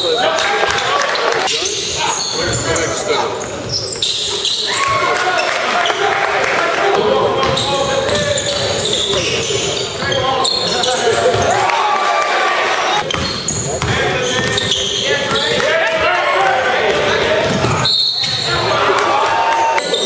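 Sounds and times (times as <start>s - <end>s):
players and spectators shouting: 0.0s - 13.1s, 13.7s - 20.0s
basketball bouncing on court: 7.3s - 10.2s, 13.0s - 19.4s.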